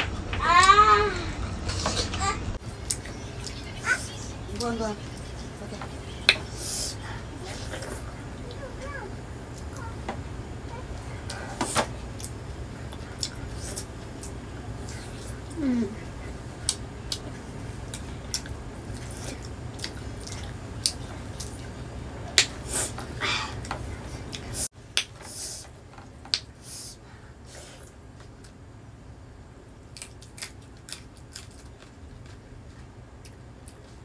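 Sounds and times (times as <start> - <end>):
chewing and lip smacks: 2.8 - 5.4, 12.2 - 15.4, 16.6 - 21.8, 29.9 - 34.0.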